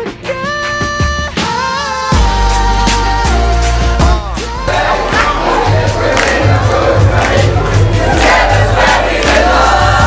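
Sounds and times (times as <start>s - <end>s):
music with pulsing bass beat: 0.0s - 10.0s
crowd shouting and chanting: 3.9s - 10.0s.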